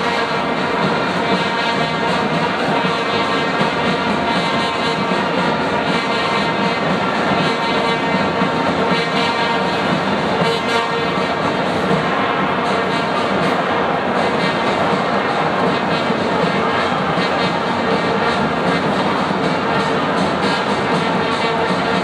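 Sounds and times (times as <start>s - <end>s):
crowd roar: 0.0s - 22.0s
drone of blown horns: 0.0s - 22.0s.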